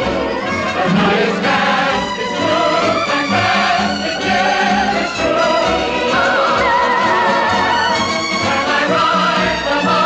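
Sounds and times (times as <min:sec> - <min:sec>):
samba dance music: 0:00.0 - 0:10.0.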